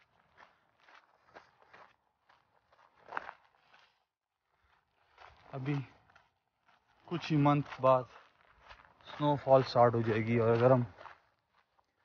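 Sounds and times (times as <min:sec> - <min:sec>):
faint footsteps walking: 0:00.0 - 0:12.0.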